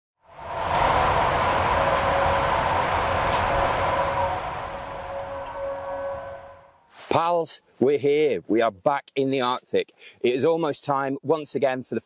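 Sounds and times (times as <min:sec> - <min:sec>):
rushing wind-like noise: 0:00.2 - 0:06.8
faint held drone: 0:00.3 - 0:06.8.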